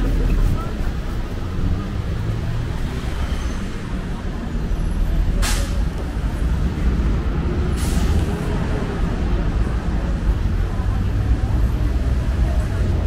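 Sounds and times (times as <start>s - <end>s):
bus engine rumbling: 0.0s - 13.0s
street traffic: 0.0s - 13.0s
bus air brakes hissing: 5.3s - 5.9s, 7.6s - 8.5s.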